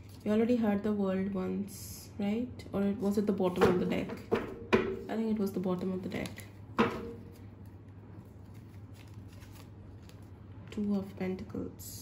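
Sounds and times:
low steady hum: 0.0s - 12.0s
cards rustling and ticking: 7.2s - 10.9s.

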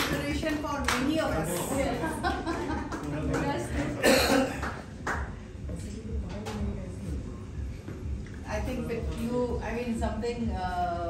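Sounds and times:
indistinct voices in a room: 0.0s - 11.0s.

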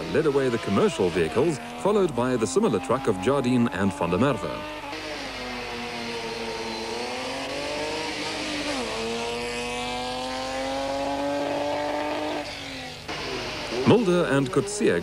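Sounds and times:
racing vehicle engine accelerating: 0.0s - 15.0s.

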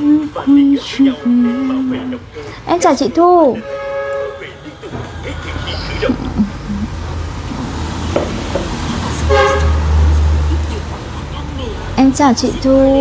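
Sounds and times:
low engine rumble: 0.0s - 13.0s
short horn toots: 3.6s - 4.5s.

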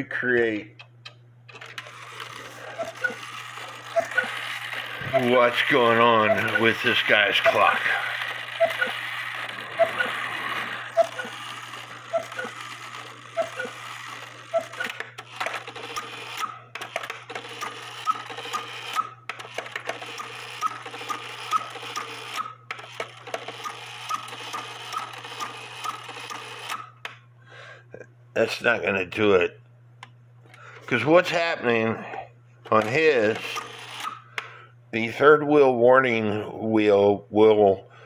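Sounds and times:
clock gears whirring: 0.8s - 27.1s, 32.7s - 34.4s.

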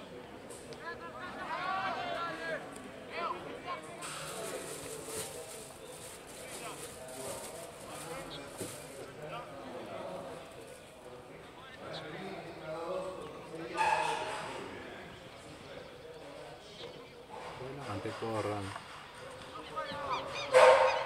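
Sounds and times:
distant voices calling out: 11.4s - 21.0s.

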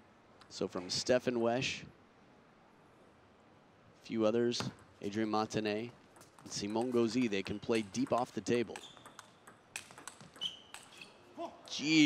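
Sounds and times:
table tennis ball taps: 6.1s - 11.0s.

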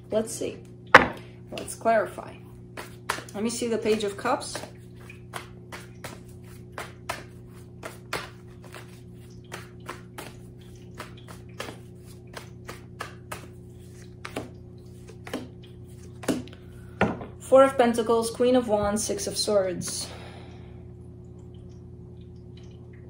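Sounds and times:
cards shuffling: 3.9s - 10.4s, 11.0s - 16.5s.

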